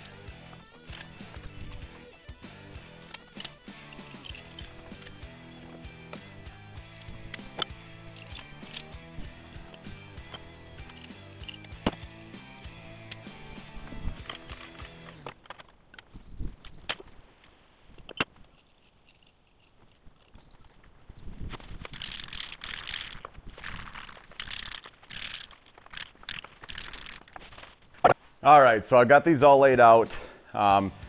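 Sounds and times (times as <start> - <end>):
background music: 0.0 - 15.6, 28.4 - 31.0
metal stands clinking on concrete: 0.0 - 17.1.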